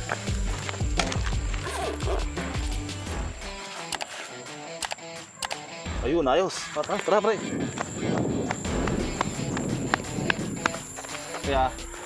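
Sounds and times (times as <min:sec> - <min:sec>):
footsteps on concrete: 0:00.0 - 0:04.3, 0:06.6 - 0:12.0.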